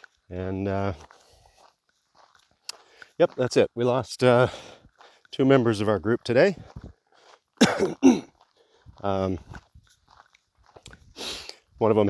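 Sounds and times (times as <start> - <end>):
man coughing: 7.6 - 8.4.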